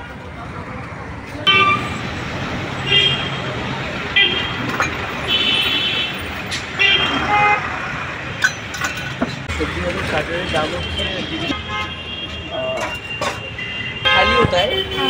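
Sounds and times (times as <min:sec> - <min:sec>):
street traffic noise: 0:00.0 - 0:15.0
vehicle horns honking: 0:01.4 - 0:02.0, 0:02.8 - 0:07.8, 0:10.1 - 0:15.0.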